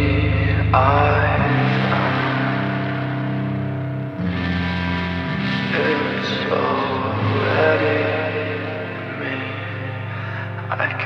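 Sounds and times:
person singing: 0.0s - 4.5s, 5.2s - 11.0s
emo rock song with guitars: 0.0s - 11.0s
sustained bass line: 0.0s - 11.0s.

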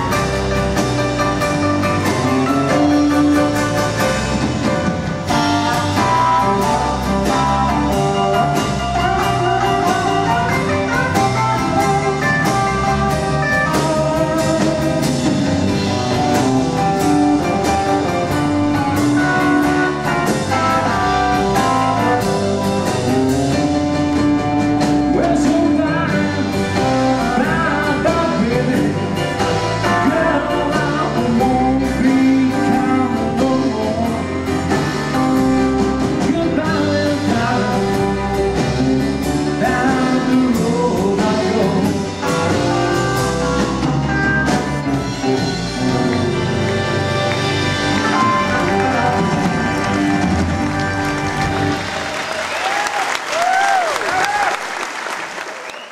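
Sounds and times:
rock and roll band playing: 0.0s - 55.9s.

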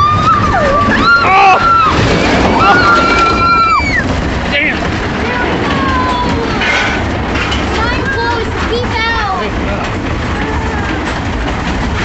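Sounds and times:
riders yelling and screaming: 0.0s - 4.3s
roller coaster rumbling on track: 0.0s - 12.0s.

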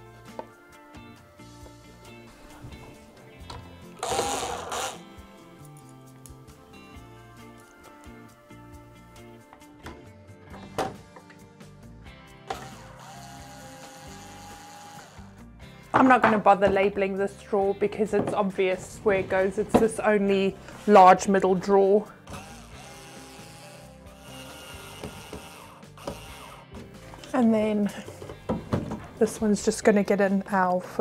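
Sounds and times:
background music: 0.0s - 31.0s
cordless drill whirring: 4.0s - 5.0s, 12.5s - 15.3s, 22.3s - 26.8s.

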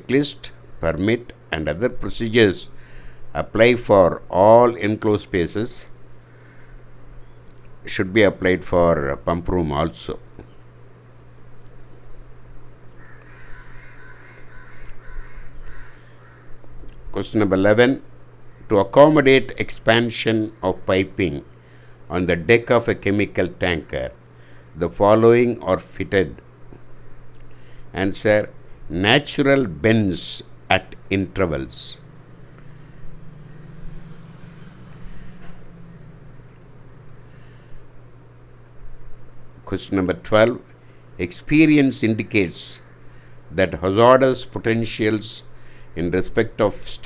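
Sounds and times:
steady low hum: 0.0s - 47.0s
bird calling: 13.0s - 16.6s, 32.2s - 37.7s.

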